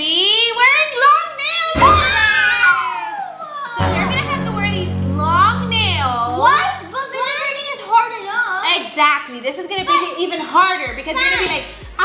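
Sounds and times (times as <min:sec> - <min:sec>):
background music: 0:03.8 - 0:07.4, 0:10.2 - 0:12.0.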